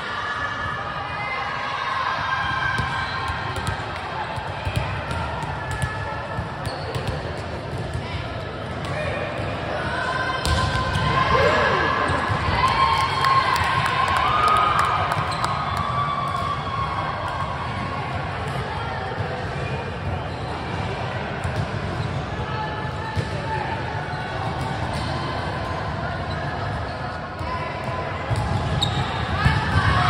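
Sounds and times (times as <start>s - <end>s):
players calling and shouting: 0.5s - 25.4s.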